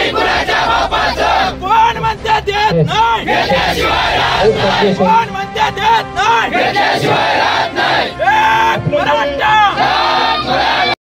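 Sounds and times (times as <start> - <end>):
crowd of men chanting: 0.0 - 1.6, 3.2 - 11.0.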